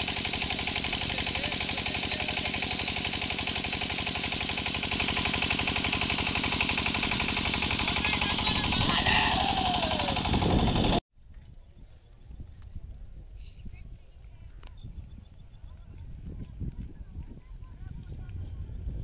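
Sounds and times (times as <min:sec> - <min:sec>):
engine knocking steadily: 0:00.0 - 0:11.0
person calling out: 0:07.9 - 0:10.3.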